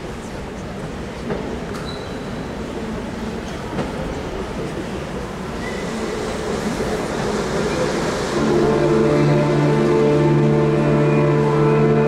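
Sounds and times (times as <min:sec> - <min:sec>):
rumbling indoor ambience: 0:08.3 - 0:12.0.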